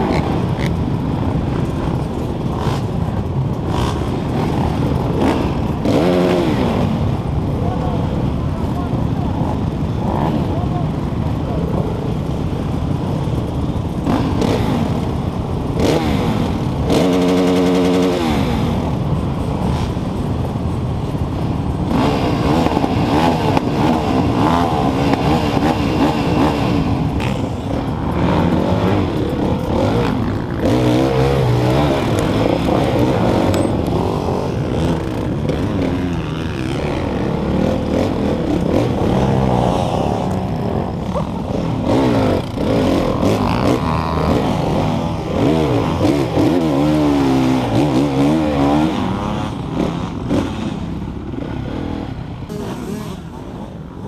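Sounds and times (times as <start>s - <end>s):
dirt bike engines revving: 0.0s - 54.0s.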